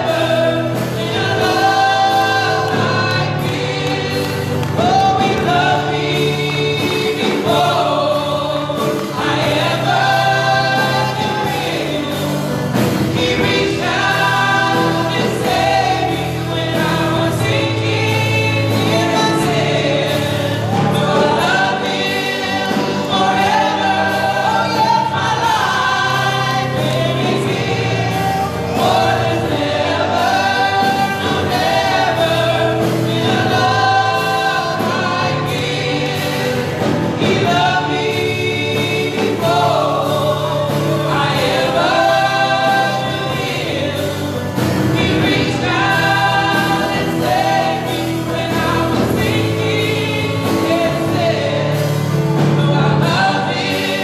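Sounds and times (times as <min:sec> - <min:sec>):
group singing a gospel song: 0:00.0 - 0:54.0
instrumental accompaniment: 0:00.0 - 0:54.0.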